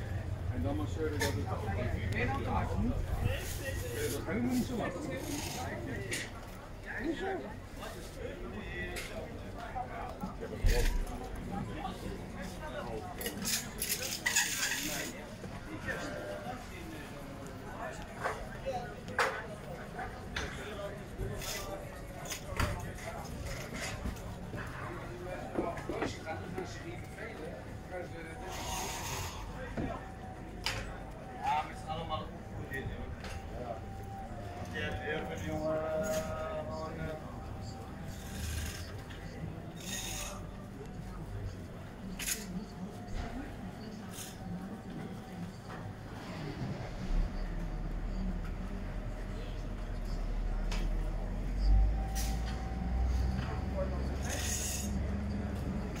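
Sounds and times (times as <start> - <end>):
faint indistinct voices: 0.0 - 56.0.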